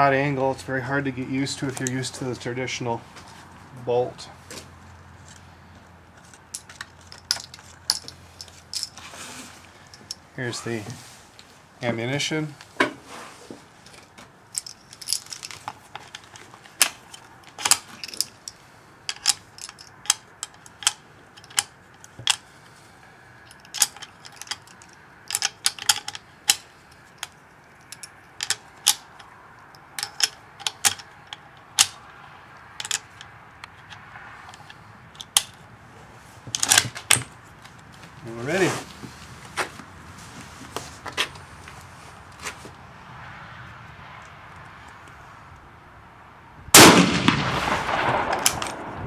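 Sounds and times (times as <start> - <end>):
metal cartridges clicking: 6.2 - 9.0, 13.8 - 22.5, 23.4 - 35.6.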